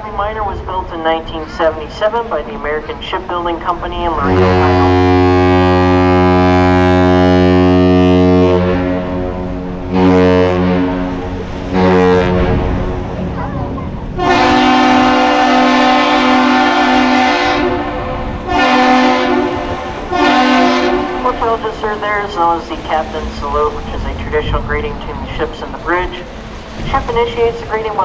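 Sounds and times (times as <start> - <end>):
low ship's horn blasts: 0.0 - 28.0
higher-pitched bridge horn blasts: 4.0 - 28.0.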